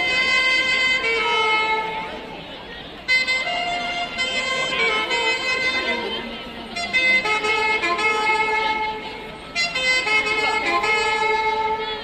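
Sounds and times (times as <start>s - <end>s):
live folk music: 0.0s - 12.0s.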